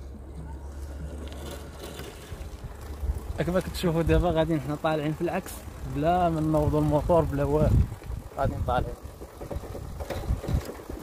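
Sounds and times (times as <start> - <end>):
tyres rolling over dirt road: 0.0 - 11.0
scooter knocks and rattles: 9.0 - 11.0.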